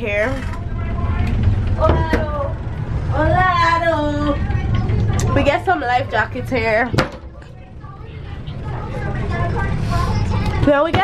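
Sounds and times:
low rumble: 0.0s - 10.6s
faint voices: 0.0s - 11.0s.

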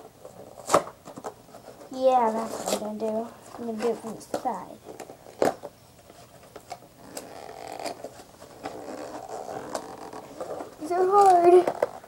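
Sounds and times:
packaging scraping and rustling: 0.2s - 12.0s.

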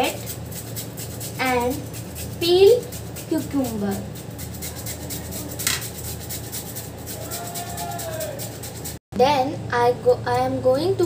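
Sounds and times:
peeler scraping a carrot: 0.0s - 9.0s.

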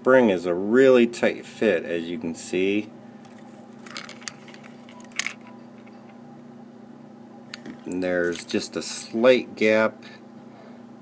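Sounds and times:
steady low hum: 0.0s - 11.0s
faint clicks of small parts: 3.2s - 6.0s.

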